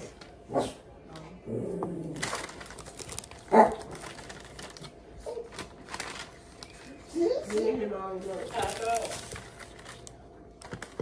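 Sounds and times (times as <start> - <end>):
paper crinkling: 2.2 - 11.0
dog barking: 3.5 - 3.9.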